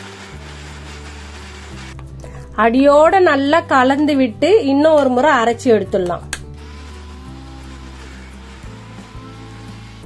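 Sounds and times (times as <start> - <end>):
mixer grinder running: 0.0 - 2.0, 6.6 - 10.0
background music: 0.0 - 10.0.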